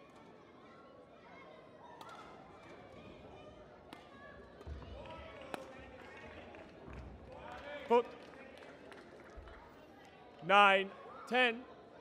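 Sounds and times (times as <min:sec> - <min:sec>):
faint hall chatter: 0:00.0 - 0:12.0.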